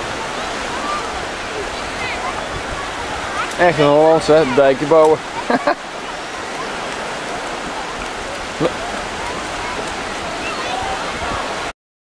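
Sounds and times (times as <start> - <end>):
faint distant voices: 0.0 - 11.7
sea surf on a beach: 0.0 - 11.7.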